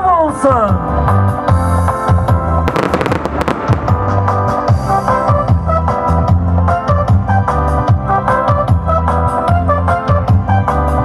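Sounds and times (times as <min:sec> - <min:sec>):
fireworks bangs and crackles: 0:02.6 - 0:05.6.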